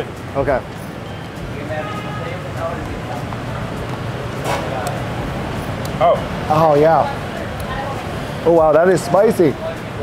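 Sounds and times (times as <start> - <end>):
faint background voices: 0.0 - 10.0
street traffic noise: 0.0 - 10.0.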